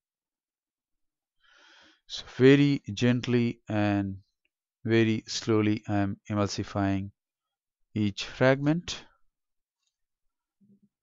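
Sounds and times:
faint breath drawn in: 1.4s - 2.1s.

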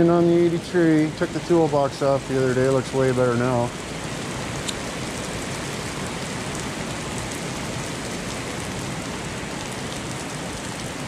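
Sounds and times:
heavy rain on asphalt: 0.0s - 11.0s.

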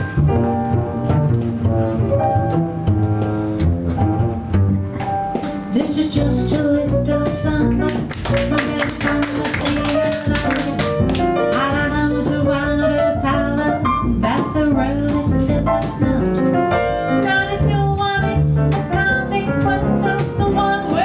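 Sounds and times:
piano: 0.0s - 21.0s
plucked upright bass: 0.0s - 21.0s
woman singing: 5.7s - 21.0s.

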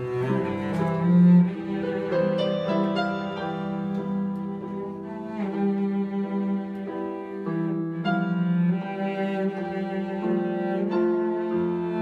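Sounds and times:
cello playing sustained notes: 0.0s - 12.0s
keyboard piano accompaniment: 0.0s - 12.0s.

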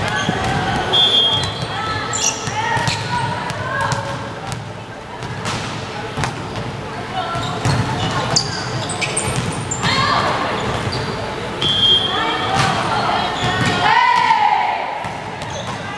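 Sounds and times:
players shouting: 11.7s - 15.0s.

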